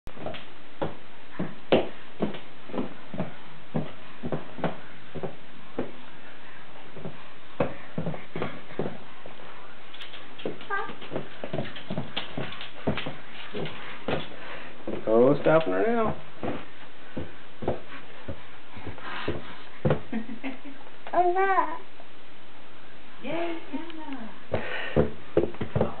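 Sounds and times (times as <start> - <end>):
dog claws clicking on hard floor: 9.9 - 14.4
toddler vocal sound: 21.1 - 21.9.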